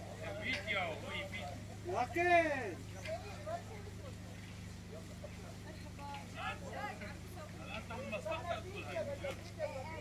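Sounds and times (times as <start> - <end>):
people talking: 0.0 - 10.0
steady low hum: 0.0 - 10.0.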